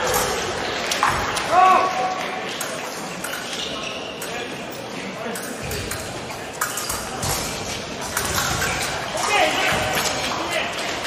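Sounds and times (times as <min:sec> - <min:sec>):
voices in a large hall: 0:00.0 - 0:11.0.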